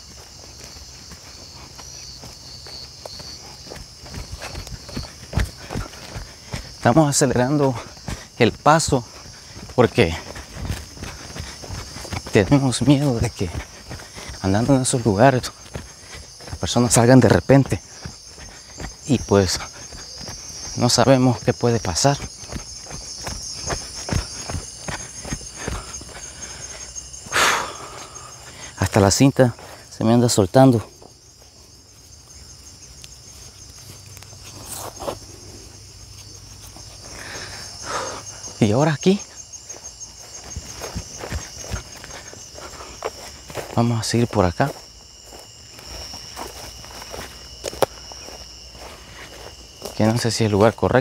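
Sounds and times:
footsteps on dirt path: 0:00.0 - 0:51.0
insects chirring: 0:00.0 - 0:51.0.

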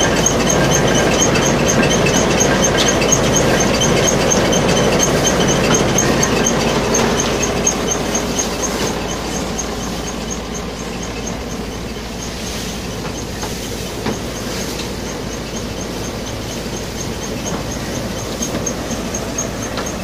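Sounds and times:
crop thresher running: 0:00.0 - 0:20.0.

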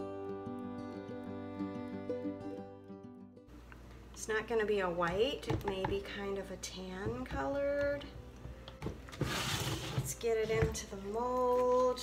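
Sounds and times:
rustling rubbing: 0:09.1 - 0:12.0.

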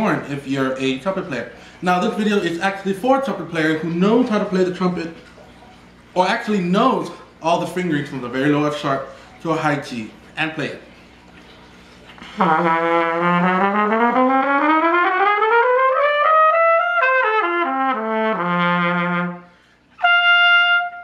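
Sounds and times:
solo cornet: 0:12.2 - 0:21.0.

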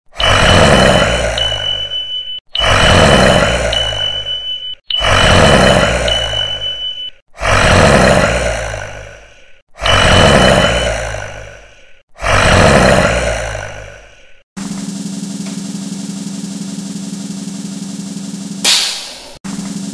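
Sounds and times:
steady high tone: 0:00.2 - 0:07.2.

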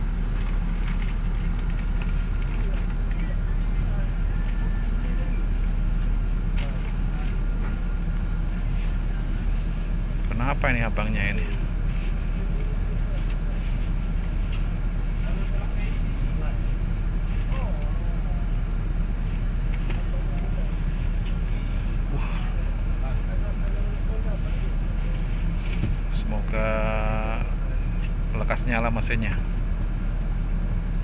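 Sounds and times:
bus engine idling: 0:00.0 - 0:31.0
faint voices: 0:02.2 - 0:29.4.

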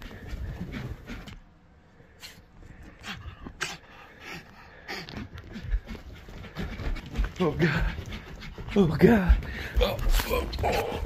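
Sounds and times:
dog panting: 0:00.0 - 0:01.6, 0:02.2 - 0:11.0.

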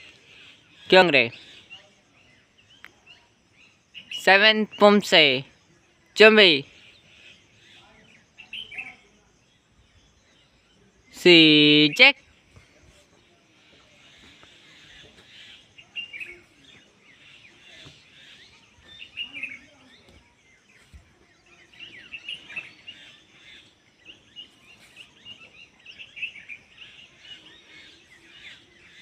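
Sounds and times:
small birds chirping: 0:00.0 - 0:29.0.

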